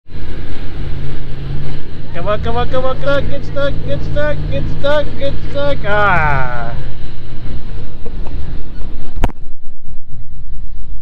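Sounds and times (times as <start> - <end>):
truck engine running hard: 0.1 - 11.0.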